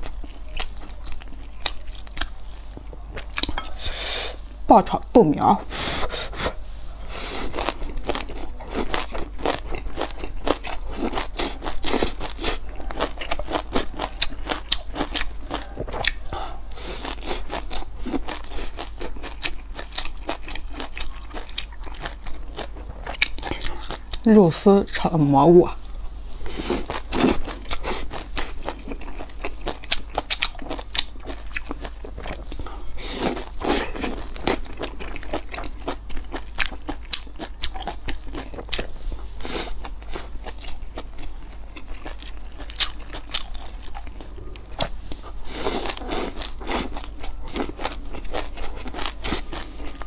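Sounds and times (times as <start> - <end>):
person chewing food: 0.0 - 4.4, 5.6 - 24.2, 25.8 - 50.0.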